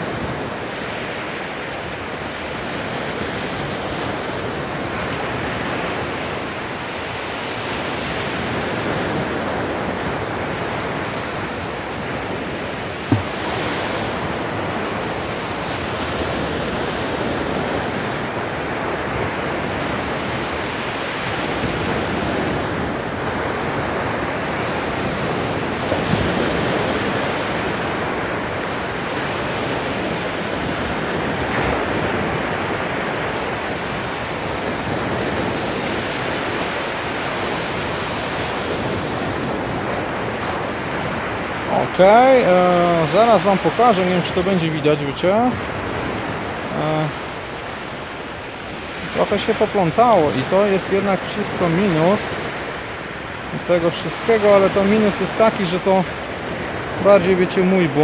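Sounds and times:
surf breaking on beach: 0.0 - 58.0
sharp knock: 13.1 - 13.4.

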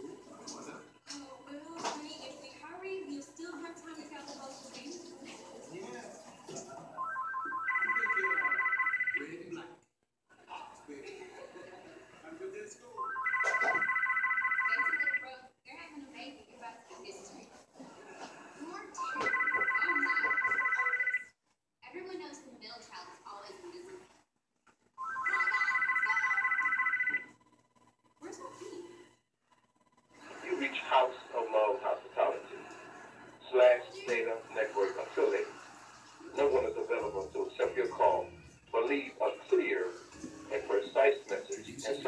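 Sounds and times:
phone ringtone warbling trill: 7.0 - 9.4, 13.0 - 15.3, 19.0 - 21.3, 25.0 - 27.3
muffled speech from small loudspeaker: 33.4 - 35.6, 36.3 - 42.0.

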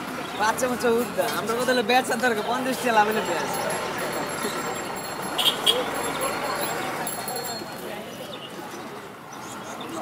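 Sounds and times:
murmur of voices: 0.0 - 10.0
outdoor noise: 0.0 - 10.0.

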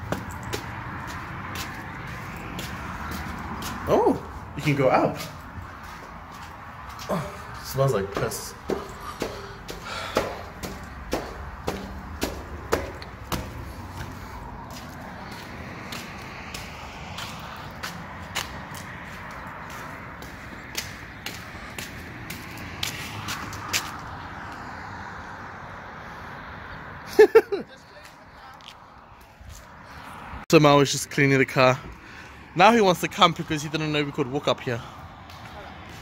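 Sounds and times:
footsteps on concrete stairs: 0.0 - 24.2, 28.0 - 29.8, 34.9 - 36.0.

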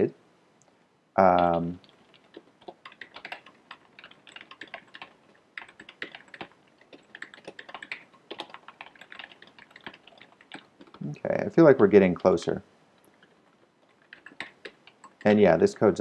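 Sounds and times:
keyboard typing: 1.2 - 15.5.

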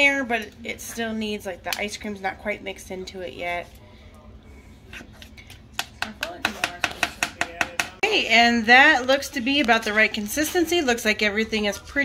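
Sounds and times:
spatula tapping plastic bowl: 5.8 - 8.0.

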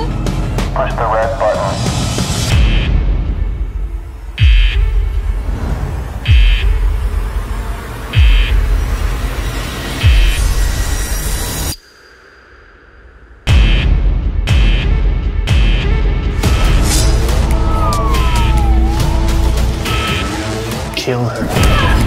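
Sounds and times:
harsh alarm-like buzz: 19.0 - 21.0.

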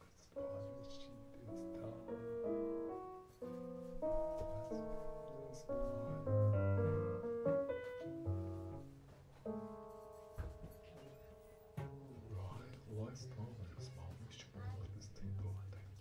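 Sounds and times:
electronic keyboard notes and chords: 0.4 - 12.2
low cello notes: 0.4 - 16.0.

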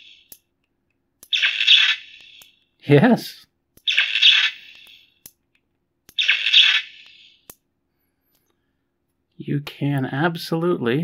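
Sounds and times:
harsh electronic crackle bursts: 6.2 - 7.2.

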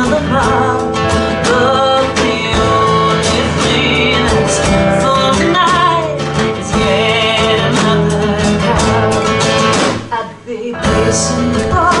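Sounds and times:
drum kit with cymbals: 0.0 - 10.1
acoustic guitar strumming: 0.0 - 12.0
woman singing: 0.0 - 12.0.

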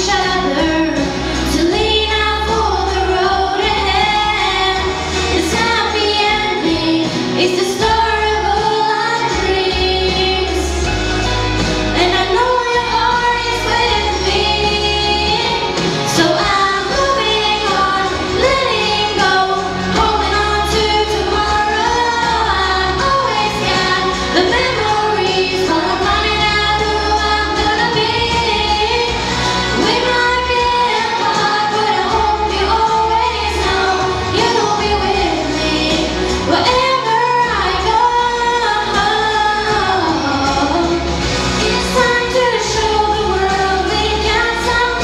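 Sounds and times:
instrumental accompaniment with bass: 0.0 - 45.0
woman singing into a microphone: 0.0 - 45.0.

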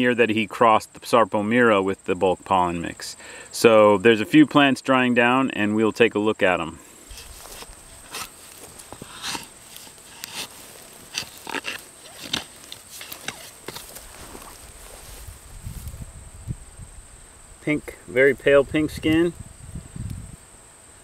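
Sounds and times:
high insect trill: 0.0 - 21.0
garden tool crunching mulch and soil: 7.0 - 16.0.

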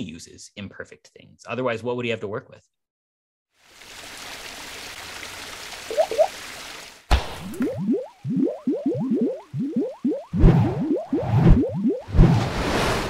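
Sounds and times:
sharp knock: 7.1 - 7.6
rising bloopy glides: 7.8 - 12.5.

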